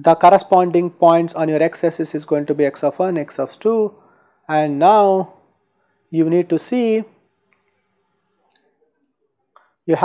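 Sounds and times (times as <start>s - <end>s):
person speaking: 0.0s - 5.4s, 6.1s - 7.2s.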